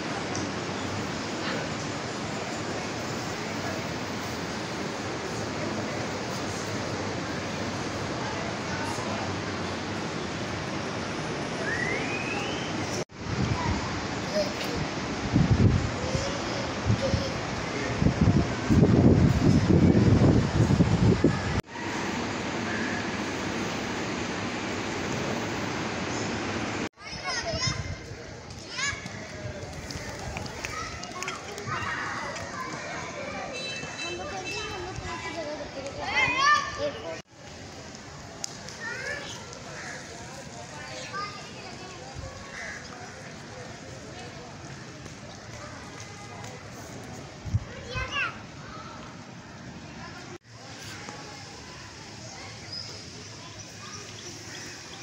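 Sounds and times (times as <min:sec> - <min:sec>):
hubbub of voices: 0:00.0 - 0:23.3, 0:27.0 - 0:55.0
children calling out: 0:11.6 - 0:18.2, 0:27.0 - 0:37.2, 0:45.5 - 0:55.0.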